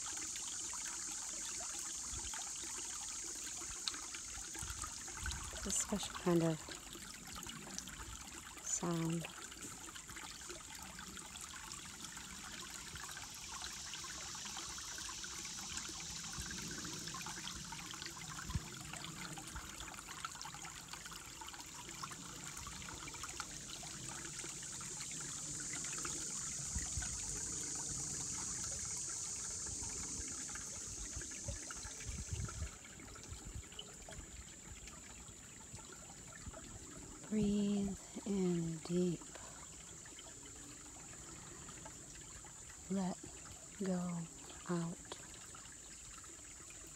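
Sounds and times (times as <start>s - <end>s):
creek trickling and gurgling: 0.0s - 46.9s
high-pitched insect chorus: 0.0s - 46.9s.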